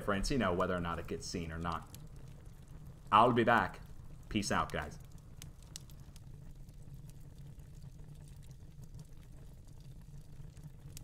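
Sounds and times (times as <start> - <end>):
fireplace crackling: 0.0 - 11.0.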